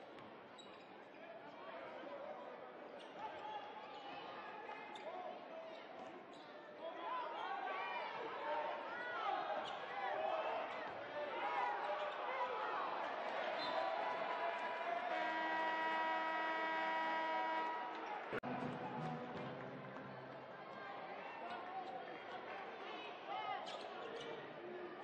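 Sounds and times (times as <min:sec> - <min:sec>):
crowd noise: 0:00.0 - 0:25.0
steady horn: 0:15.0 - 0:19.6.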